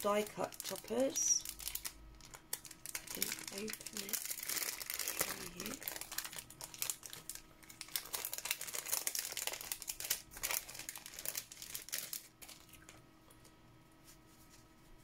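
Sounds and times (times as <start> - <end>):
plastic packet crinkling: 0.0 - 13.0.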